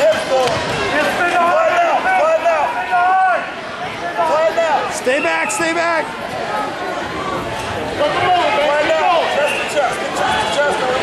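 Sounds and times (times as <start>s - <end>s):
people shouting: 0.0s - 11.0s.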